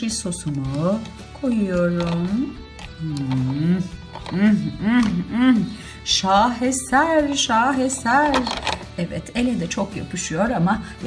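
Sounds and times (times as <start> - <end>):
woman vocalizing wordlessly: 2.1 - 5.8.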